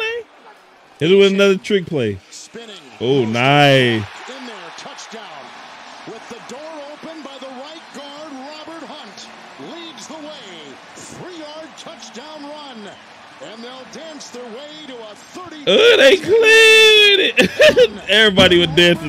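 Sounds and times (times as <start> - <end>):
stadium crowd noise: 0.0 - 19.0
commentator talking: 1.0 - 5.5, 6.2 - 19.0.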